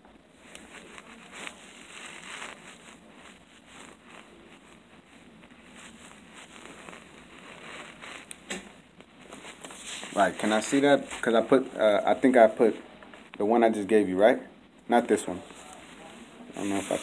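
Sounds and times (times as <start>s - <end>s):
sleeve rubbing on microphone: 0.4s - 12.6s, 15.3s - 17.0s.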